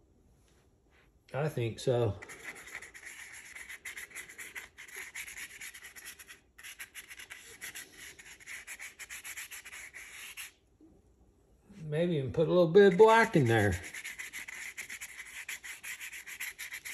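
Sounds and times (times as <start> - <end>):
paintbrush brushing on cardboard: 2.2 - 10.6, 12.8 - 16.9.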